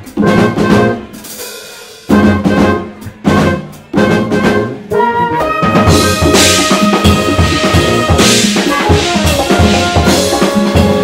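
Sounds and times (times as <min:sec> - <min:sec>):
drum kit: 0:00.0 - 0:11.0
jazz fusion band playing: 0:00.0 - 0:11.0
trumpet: 0:00.1 - 0:01.4, 0:02.1 - 0:11.0.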